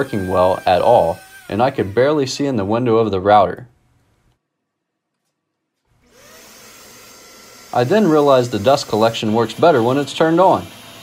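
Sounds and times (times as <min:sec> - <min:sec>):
shop vacuum motor whine: 0:00.0 - 0:02.3, 0:05.9 - 0:11.0.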